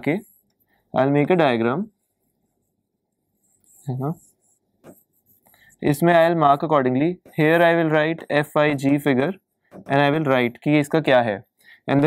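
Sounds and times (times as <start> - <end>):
person speaking: 0.0 - 2.3, 3.6 - 12.0
stylus scratching on touchscreen: 0.0 - 11.3.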